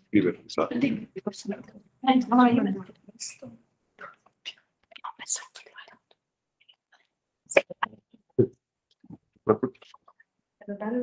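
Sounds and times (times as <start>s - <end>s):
person whispering: 0.6s - 1.5s, 4.9s - 6.0s.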